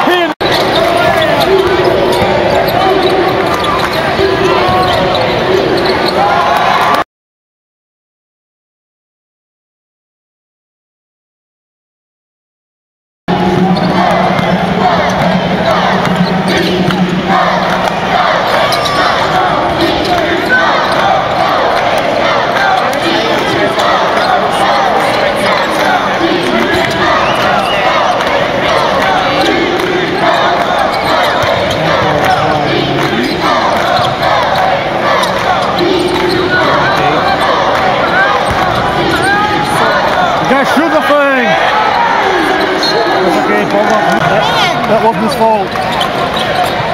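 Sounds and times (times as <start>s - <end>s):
crowd noise: 0.0s - 7.1s, 13.3s - 46.9s
spectators' voices and shouts: 0.0s - 7.1s, 13.3s - 46.9s
basketball bouncing on court: 0.4s - 5.9s, 35.2s - 40.1s.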